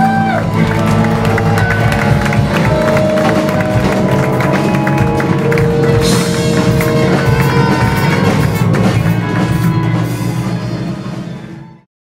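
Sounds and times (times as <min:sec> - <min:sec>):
live band playing: 0:00.0 - 0:11.8
cymbal crash: 0:00.6 - 0:11.8.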